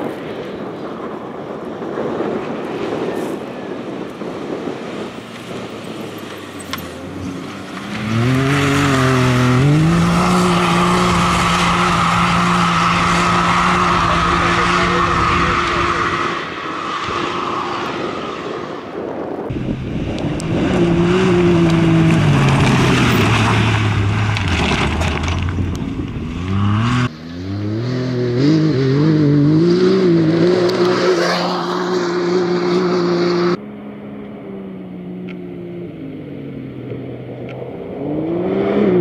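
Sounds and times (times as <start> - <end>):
engine under hard acceleration: 5.3 - 18.6, 19.5 - 39.0.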